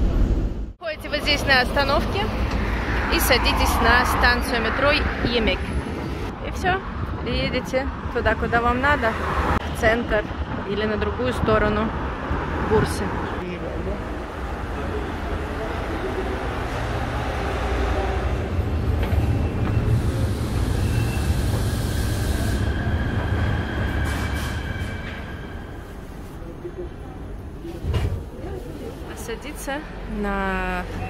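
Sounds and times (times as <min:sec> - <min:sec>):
metro train rumbling: 0:00.0 - 0:31.0.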